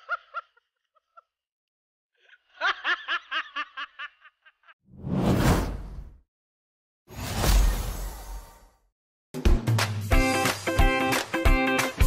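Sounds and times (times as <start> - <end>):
whoosh sound effects: 5.0 - 6.2.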